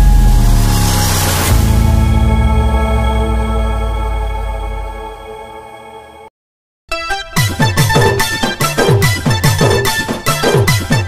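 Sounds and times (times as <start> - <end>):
keyboard melody: 6.9 - 11.0.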